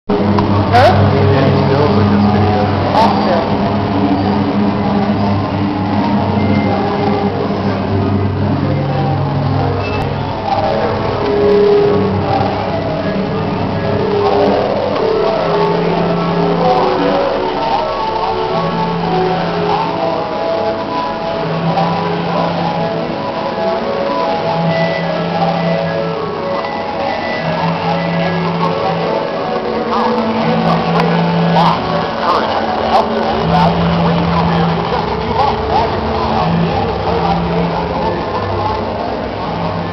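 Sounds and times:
steady humming tones: 0:00.1 - 0:39.9
steady low drone: 0:00.1 - 0:39.9
voices: 0:00.1 - 0:39.9.

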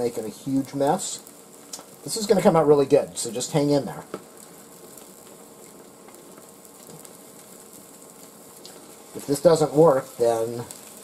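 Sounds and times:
omelette sizzling in a pan: 0:00.0 - 0:11.0.

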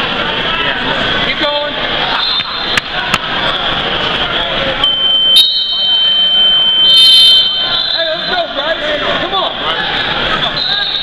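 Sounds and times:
crowd voices and shouting: 0:00.0 - 0:11.0
electronic buzzer tone: 0:04.8 - 0:07.8.

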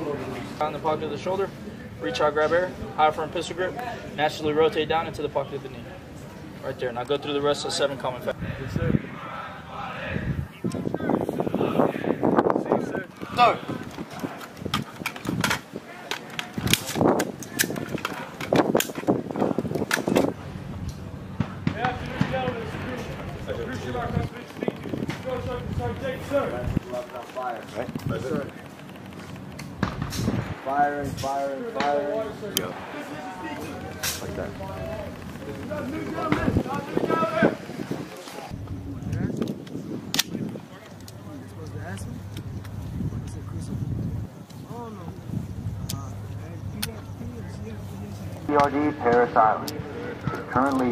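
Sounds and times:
voices: 0:00.0 - 0:50.9
rifles clicking and clacking: 0:13.0 - 0:38.5, 0:48.3 - 0:50.9.

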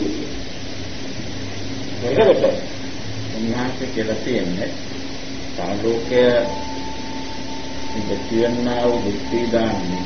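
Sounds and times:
background hiss: 0:00.0 - 0:10.0
faint low hum: 0:01.1 - 0:10.0.

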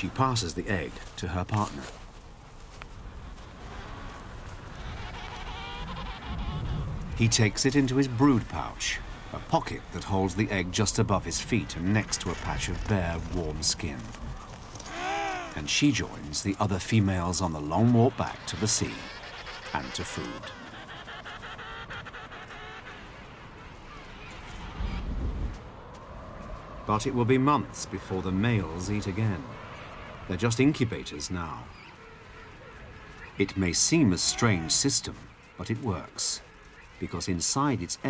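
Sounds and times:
penguins honking calls: 0:03.5 - 0:24.8, 0:30.4 - 0:37.6
penguin honking call: 0:04.6 - 0:07.5, 0:14.8 - 0:15.7, 0:17.6 - 0:24.2, 0:31.8 - 0:35.7.

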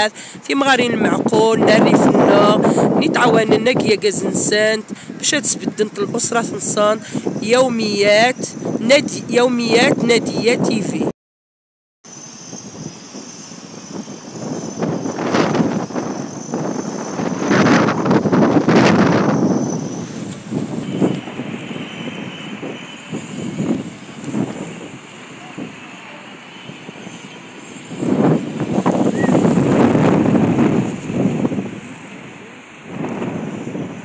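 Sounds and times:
traffic noise: 0:00.0 - 0:11.1, 0:12.1 - 0:34.0
faint voices: 0:25.2 - 0:27.6.

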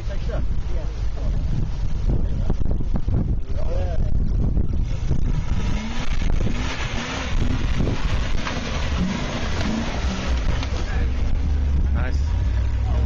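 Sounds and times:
wind rumbling on microphone: 0:00.0 - 0:13.0
car engine running: 0:04.0 - 0:13.0.

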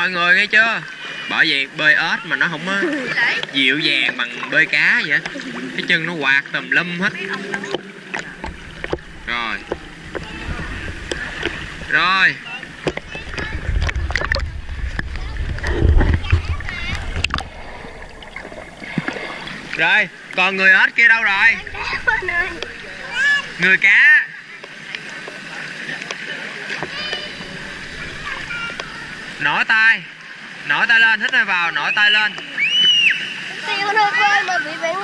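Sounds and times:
pool water sloshing and splashing: 0:00.0 - 0:35.0
faint voices: 0:02.2 - 0:29.6
low rumble: 0:07.5 - 0:20.3, 0:21.0 - 0:23.8, 0:26.9 - 0:29.4
water clicks on camera: 0:12.8 - 0:19.2.

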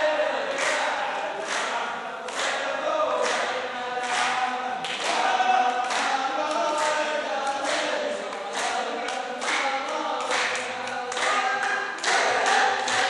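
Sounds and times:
men singing a folk chant: 0:00.0 - 0:13.0
sharp hand clap: 0:00.0 - 0:13.0.

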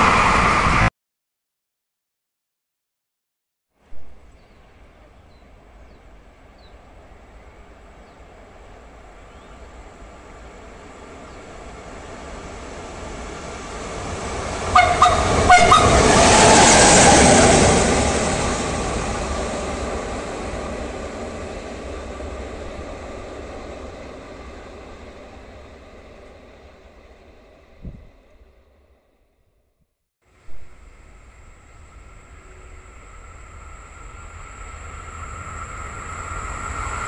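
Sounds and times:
train wheels rumbling on rails: 0:03.9 - 0:29.0, 0:30.4 - 0:37.0
train horn blasts: 0:14.7 - 0:16.4.

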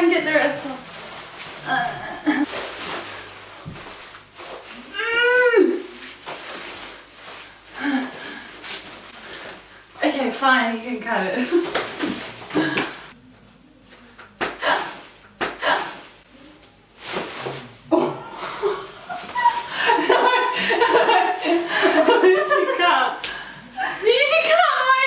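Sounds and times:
plastic wrap crackling and rustling: 0:00.0 - 0:01.7, 0:02.4 - 0:05.0, 0:05.9 - 0:12.5, 0:16.2 - 0:17.8
women laughing: 0:18.3 - 0:23.1.

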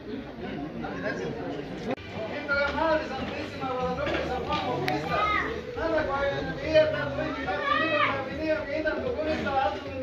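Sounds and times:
crowd talking: 0:00.0 - 0:10.0
children's voices: 0:04.9 - 0:06.0, 0:07.2 - 0:08.3.

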